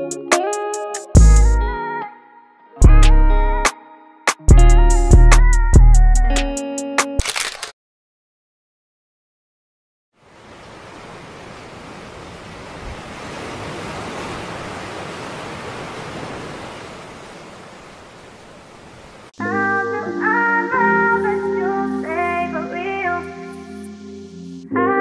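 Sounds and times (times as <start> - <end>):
rushing water: 10.2 - 19.4.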